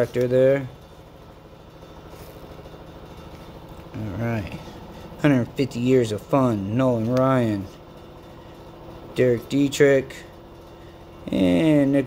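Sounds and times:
low pulsing mechanical hum: 0.0 - 12.0.

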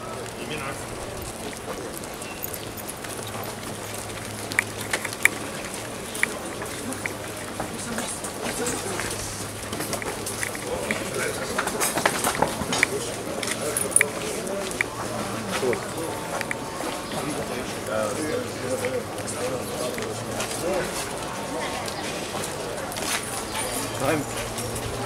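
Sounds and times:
footsteps in dress shoes on pavement: 0.0 - 25.0
indistinct voices: 0.0 - 25.0
sharp clicks: 4.4 - 7.3, 15.6 - 16.6.

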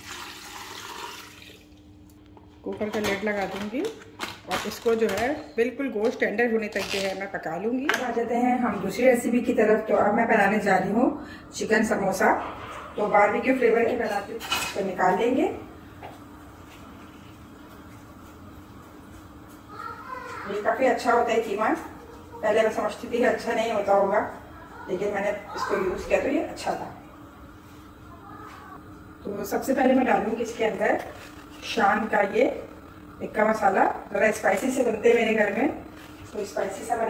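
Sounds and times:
water pouring into metal pot: 0.0 - 1.8.

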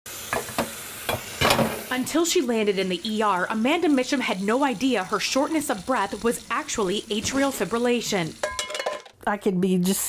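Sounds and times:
tap water running into sink: 0.2 - 9.1
dishes clinking: 0.4 - 1.8, 8.4 - 9.2.

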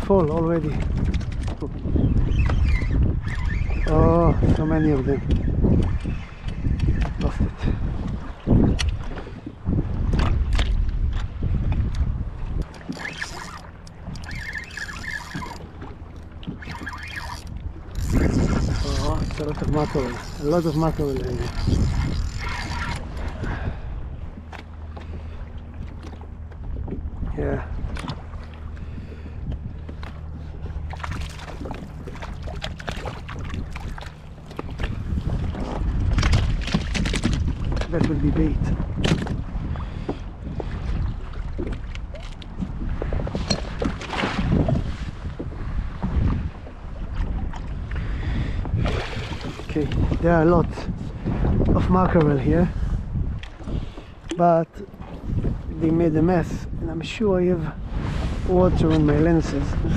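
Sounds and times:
wind buffeting microphone: 0.0 - 59.9
handling clatter on plastic kayak: 0.1 - 23.7, 24.3 - 47.8.

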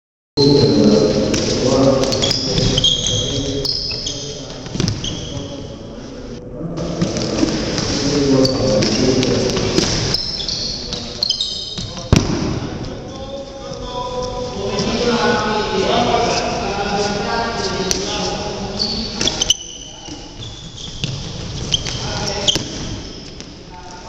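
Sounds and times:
shoes squeaking on court: 0.4 - 5.7, 7.0 - 12.2, 17.1 - 23.7
players' voices echoing: 0.4 - 24.0
ball bouncing: 4.7 - 5.0, 11.8 - 12.8, 20.1 - 23.5.

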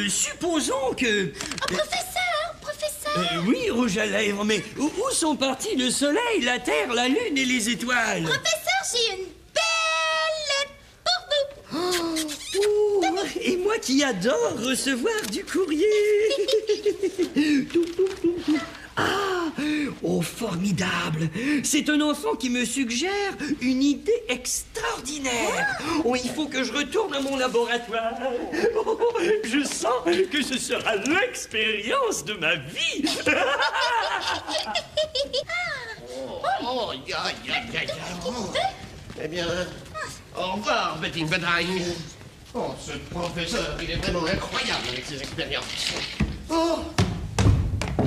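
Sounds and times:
gleeful chuckling laughter: 15.9 - 18.8, 33.0 - 36.0.

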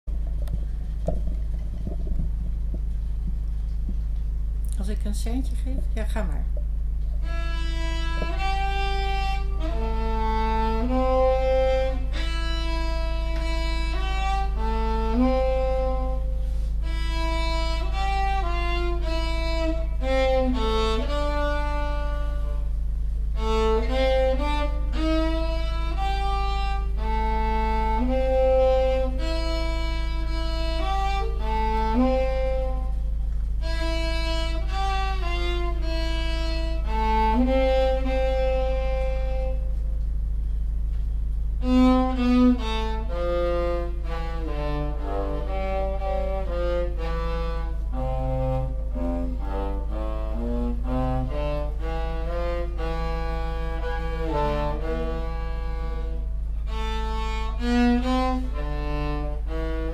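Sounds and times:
cello bowed melody: 0.1 - 59.9
low hum: 0.1 - 59.9.

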